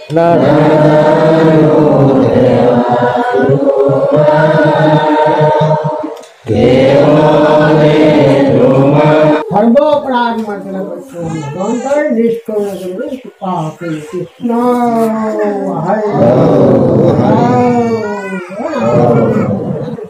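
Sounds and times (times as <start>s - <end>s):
men chanting a prayer: 0.0s - 10.1s, 10.9s - 20.0s.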